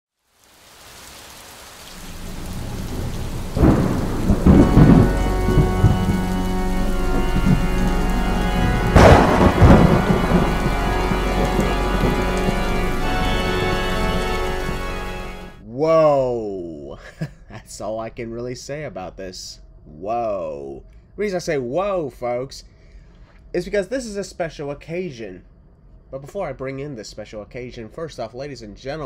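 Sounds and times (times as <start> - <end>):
steady rain: 0.1 - 15.6
thunder rolling: 1.9 - 15.6
faint steady tones: 2.0 - 15.6.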